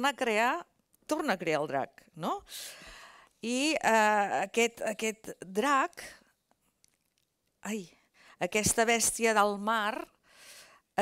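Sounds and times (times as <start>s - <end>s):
woman speaking: 0.0s - 2.8s, 3.4s - 6.2s, 7.6s - 10.2s.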